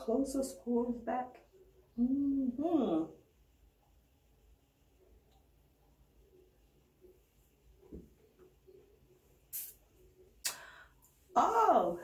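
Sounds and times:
breath: 10.5 - 11.0.

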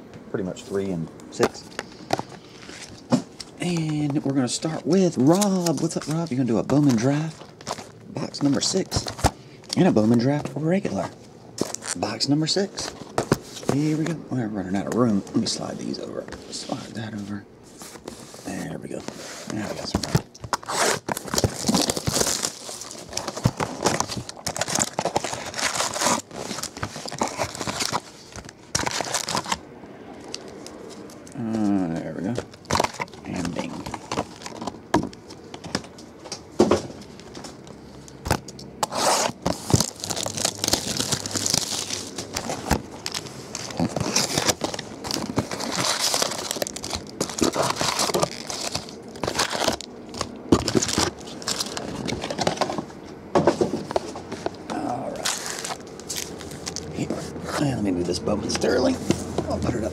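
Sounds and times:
foil card packs crinkling: 0.7 - 17.2, 17.8 - 53.0, 53.6 - 59.9
plastic shrink wrap tearing: 20.5 - 29.6, 38.8 - 52.5, 55.1 - 56.9.

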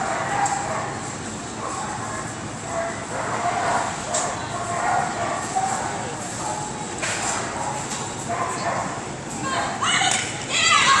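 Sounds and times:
dog barking: 0.0 - 1.0, 1.6 - 6.7, 7.5 - 9.0.

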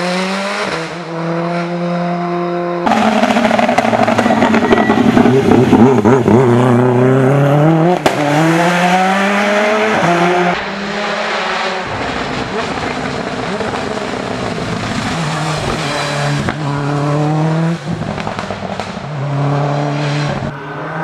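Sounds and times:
race car engine revving: 0.0 - 21.0.

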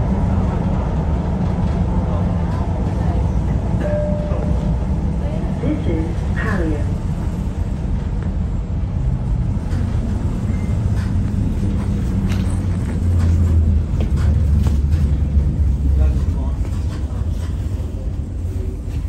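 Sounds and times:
train running low rumble: 0.0 - 19.0.

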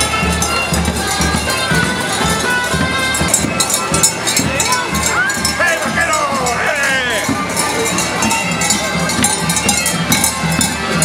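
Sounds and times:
cowbells clanking: 0.0 - 11.0
crowd voices: 0.0 - 11.0
person shouting: 5.6 - 7.3.

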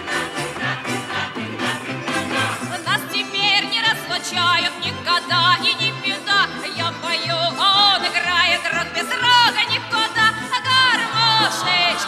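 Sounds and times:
instrumental accompaniment with bass: 0.0 - 12.0
woman singing with vibrato: 2.4 - 12.0.

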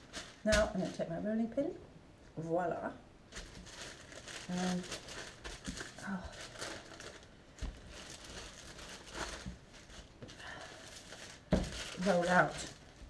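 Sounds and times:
baking paper crinkling: 0.0 - 1.1, 3.3 - 13.0.

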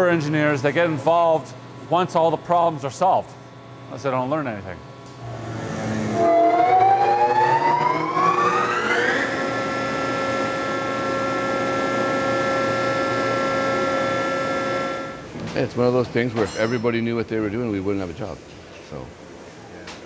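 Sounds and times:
hydraulic pump whining: 5.2 - 15.3.

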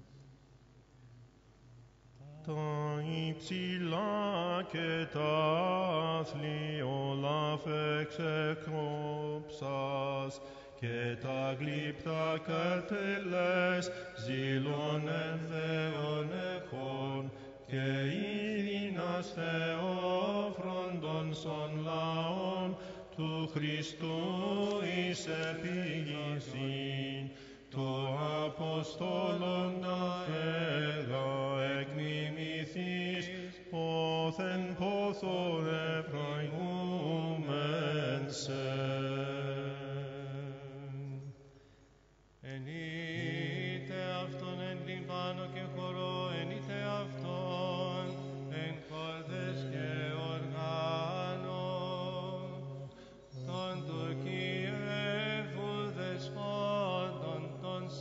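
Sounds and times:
melismatic chant melody: 2.4 - 41.2, 42.5 - 58.0.

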